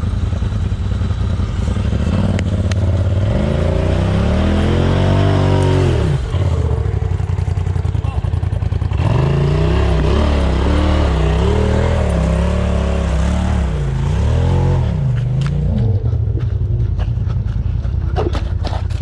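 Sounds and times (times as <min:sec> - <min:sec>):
off-road vehicle engine revving: 0:00.0 - 0:19.0.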